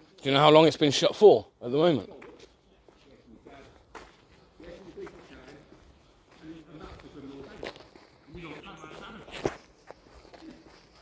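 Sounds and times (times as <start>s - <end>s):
footsteps on tarmac: 0.0s - 11.0s
faint distant voices talking: 1.9s - 11.0s.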